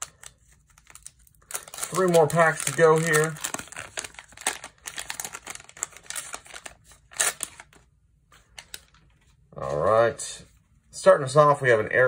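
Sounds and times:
wax paper wrapper crinkling and tearing: 0.0 - 10.0.

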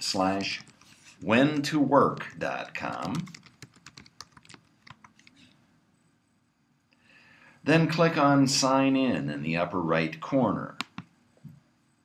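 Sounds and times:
computer keyboard keystrokes: 2.1 - 5.4, 10.8 - 11.1.

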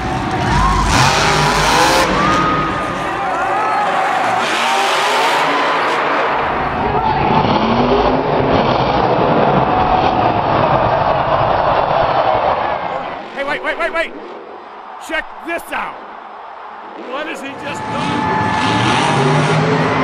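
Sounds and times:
monster truck engines revving: 0.0 - 15.1, 16.0 - 20.0
stadium crowd noise: 0.0 - 20.0.

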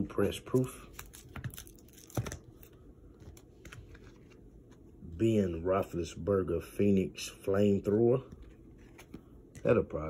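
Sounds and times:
plastic card holders rustling: 0.5 - 4.9.

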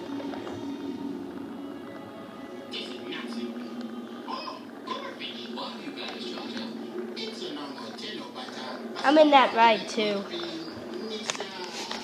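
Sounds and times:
background music: 0.0 - 7.8.

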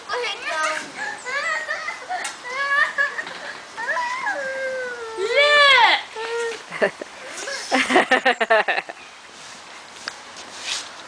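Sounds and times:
child calling out and chattering: 0.1 - 6.7.

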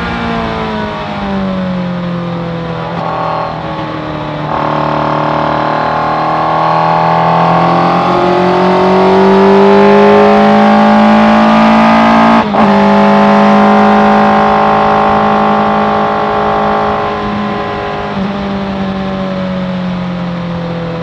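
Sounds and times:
motorcycle engine accelerating: 0.0 - 21.0.

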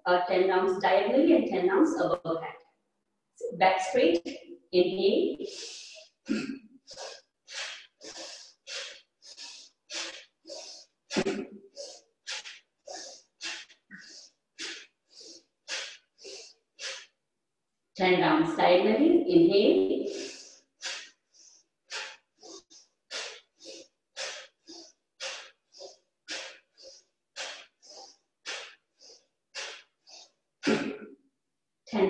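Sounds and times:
sharp forceful breaths: 5.4 - 17.2, 19.9 - 31.1.

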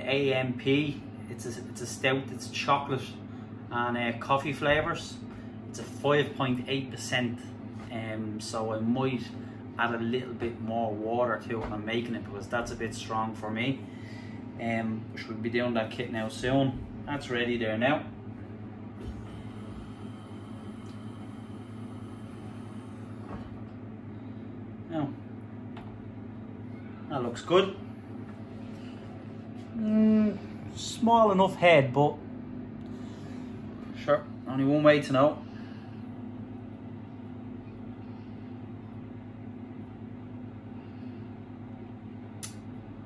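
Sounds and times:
low hum: 0.0 - 43.0
faint click: 42.4 - 42.6.

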